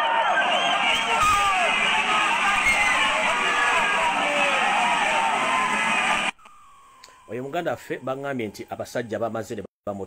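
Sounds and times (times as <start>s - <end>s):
crowd shouting and wailing: 0.0s - 6.4s.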